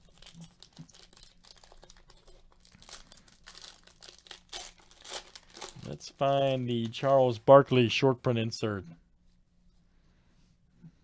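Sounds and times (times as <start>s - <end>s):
foil wrapper crinkling and tearing: 0.0s - 7.0s.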